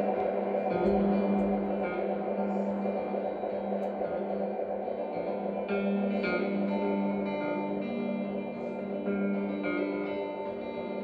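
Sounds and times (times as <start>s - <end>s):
live music drone of held notes: 0.0s - 11.0s.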